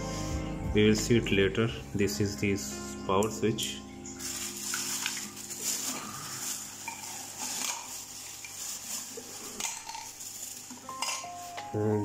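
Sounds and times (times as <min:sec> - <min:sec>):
plastic packaging crinkling: 0:04.2 - 0:11.9.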